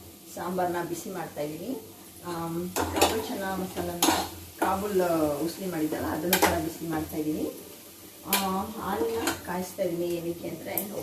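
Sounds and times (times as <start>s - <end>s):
woman talking: 0.3s - 7.6s, 8.3s - 11.0s.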